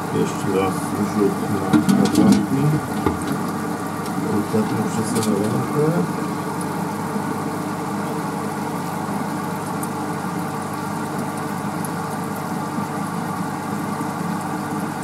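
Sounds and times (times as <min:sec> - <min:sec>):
aquarium equipment humming: 0:00.0 - 0:15.0.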